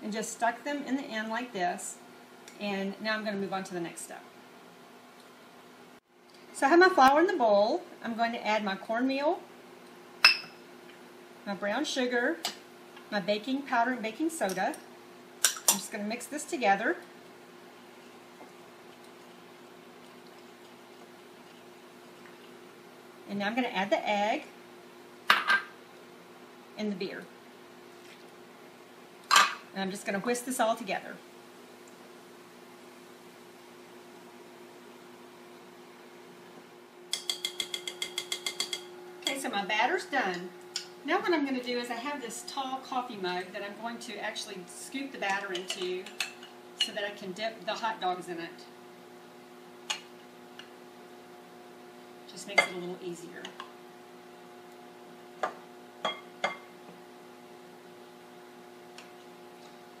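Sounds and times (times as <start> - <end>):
induction cooktop hum: 0.0 - 60.0
whisk clinking in glass bowl: 37.1 - 38.9.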